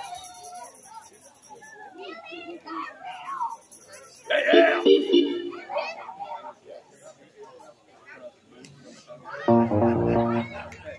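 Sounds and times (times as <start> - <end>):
people talking and calling out: 0.0 - 10.9.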